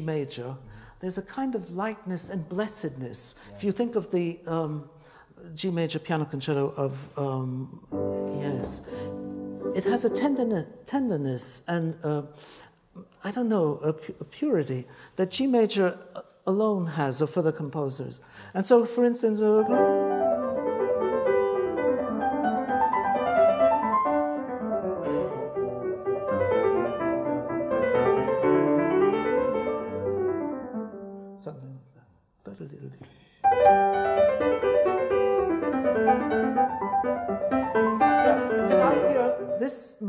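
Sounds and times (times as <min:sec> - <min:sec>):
grand piano playing: 0:07.8 - 0:11.5, 0:19.6 - 0:31.4, 0:33.4 - 0:40.0.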